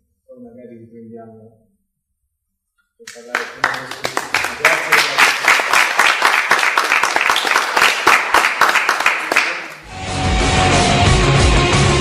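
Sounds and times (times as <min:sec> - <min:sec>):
audience applauding: 0:03.1 - 0:09.9
drum-heavy rock music: 0:09.9 - 0:12.0.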